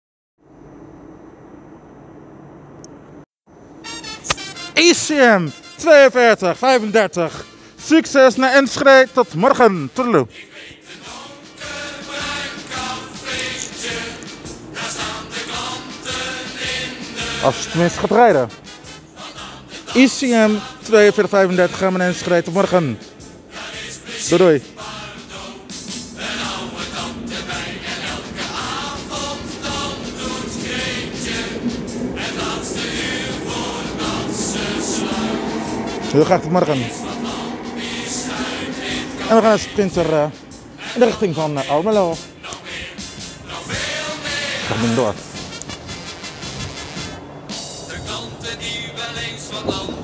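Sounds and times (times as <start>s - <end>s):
electric train humming: 0.4s - 9.7s, 10.4s - 50.0s
whining traction motors: 25.0s - 41.0s
pitched tone: 29.9s - 42.3s.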